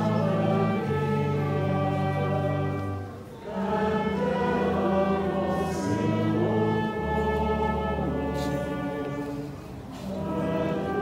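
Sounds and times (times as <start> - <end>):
choir singing sustained chords: 0.0 - 11.0.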